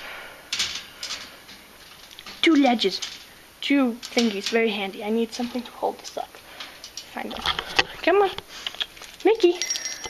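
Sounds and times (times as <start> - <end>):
scraping and rustling: 0.5 - 9.4.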